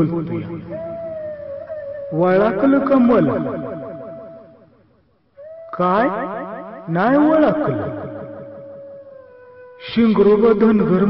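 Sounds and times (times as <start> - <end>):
echoing sweeping electronic tones: 0.0 - 11.0.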